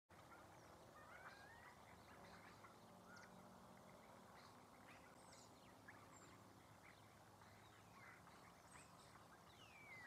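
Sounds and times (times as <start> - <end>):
distant bird calls: 0.1 - 10.0.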